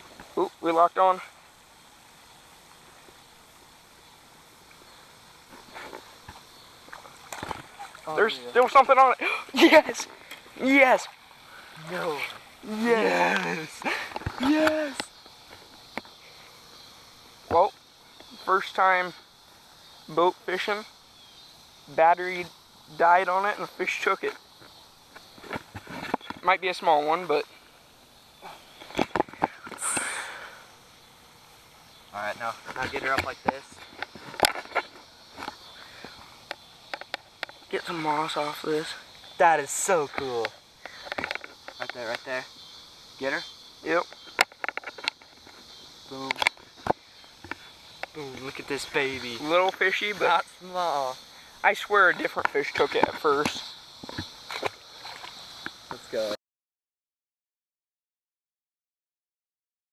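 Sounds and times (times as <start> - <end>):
faint outdoor background noise: 0.0 - 56.4
breathy sniff: 29.8 - 30.8.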